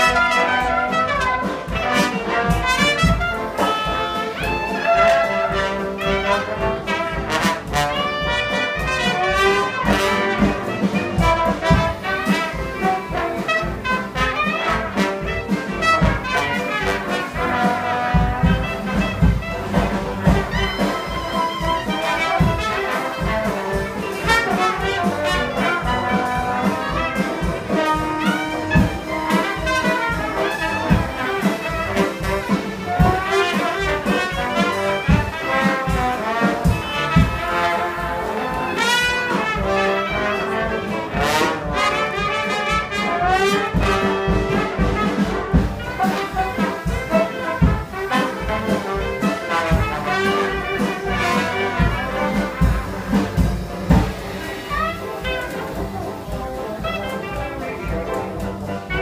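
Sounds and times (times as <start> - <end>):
brass horns: 0.0 - 59.0
double bass: 0.0 - 59.0
drums: 0.0 - 59.0
piano: 0.0 - 59.0.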